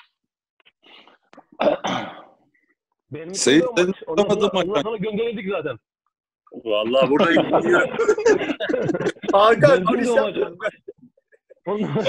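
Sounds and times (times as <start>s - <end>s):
person clearing throat: 1.6s - 2.4s.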